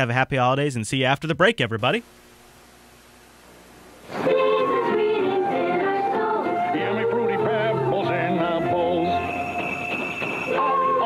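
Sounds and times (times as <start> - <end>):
singing with music: 4.0 - 11.0.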